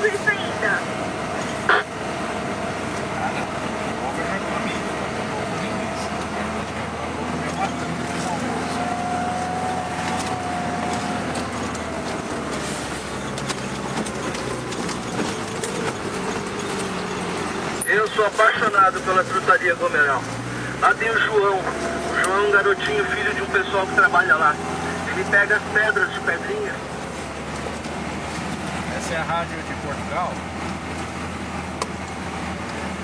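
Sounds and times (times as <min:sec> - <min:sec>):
car engine and tyre noise: 0:00.0 - 0:33.0.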